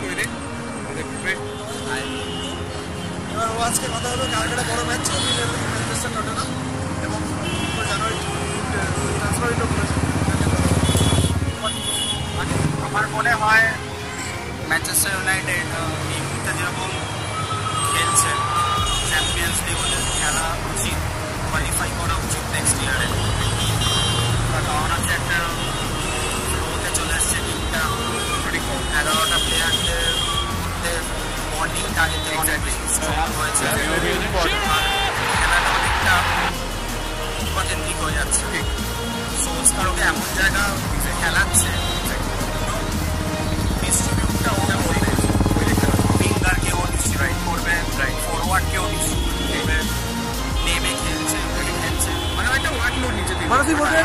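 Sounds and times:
men talking: 0:00.0 - 0:17.2, 0:17.8 - 0:54.0
road traffic hum: 0:00.0 - 0:54.0
man speaking: 0:21.6 - 0:23.3, 0:30.8 - 0:36.5, 0:43.7 - 0:49.9, 0:50.7 - 0:54.0.

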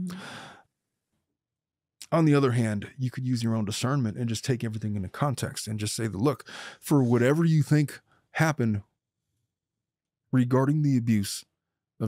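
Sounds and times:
person murmuring: 0:00.0 - 0:00.4
person sighing: 0:00.0 - 0:00.6.

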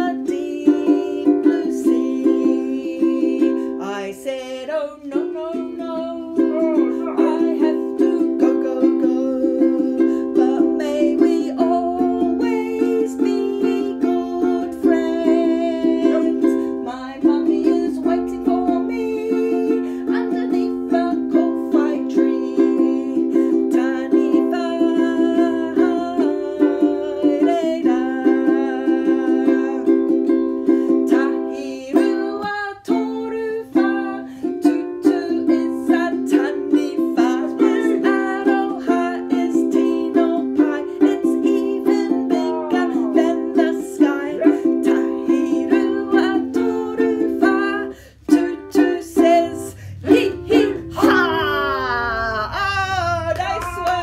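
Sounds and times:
ukulele strumming: 0:00.0 - 0:54.0
woman singing: 0:00.0 - 0:54.0.

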